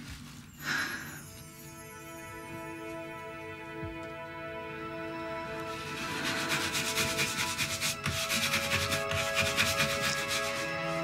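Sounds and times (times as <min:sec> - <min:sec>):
soft background music: 0:00.0 - 0:11.0
rhythmic scratchy rubbing strokes: 0:05.7 - 0:11.0.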